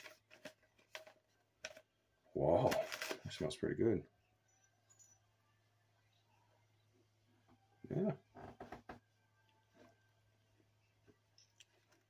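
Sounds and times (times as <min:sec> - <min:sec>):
plastic candy pouch rustling: 0:00.0 - 0:01.9, 0:02.6 - 0:03.5.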